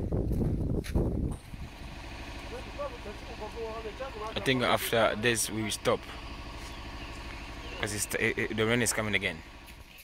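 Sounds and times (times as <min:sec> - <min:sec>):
wind rumbling on microphone: 0:00.0 - 0:01.8.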